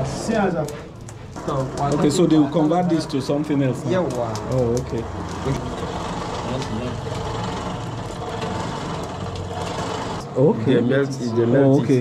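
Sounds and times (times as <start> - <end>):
hand-cranked blower whirring: 1.4 - 10.5.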